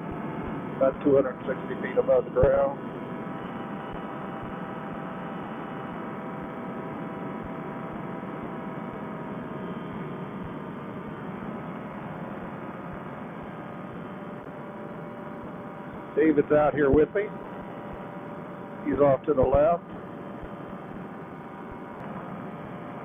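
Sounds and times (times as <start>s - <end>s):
paramotor engine and propeller drone: 0.0s - 23.0s.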